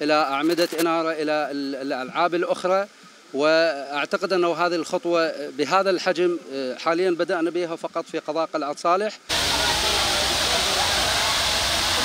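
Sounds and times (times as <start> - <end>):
water fountain spraying: 9.3 - 12.0.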